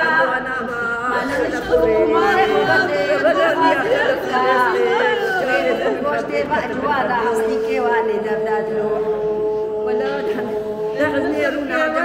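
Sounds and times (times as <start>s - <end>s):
woman talking: 0.0s - 9.0s
other voices in room: 0.0s - 12.0s.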